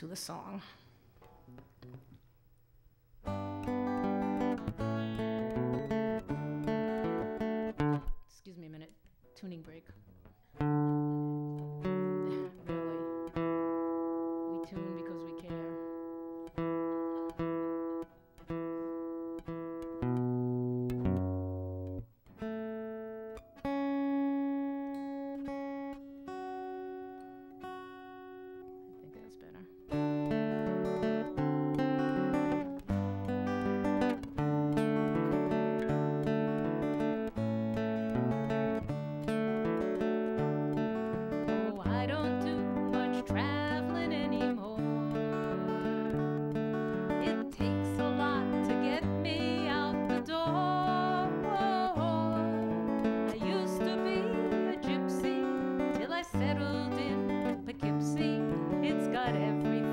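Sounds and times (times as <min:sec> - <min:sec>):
acoustic guitar strings plucked: 0:01.2 - 0:02.4, 0:03.2 - 0:59.9
guitar chords strummed: 0:03.2 - 0:08.3, 0:09.3 - 0:59.9.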